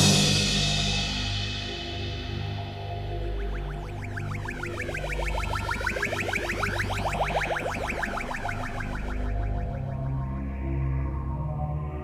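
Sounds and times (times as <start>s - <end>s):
trance synthesizer pattern: 2.6s - 11.3s
steady bass line: 2.9s - 10.7s.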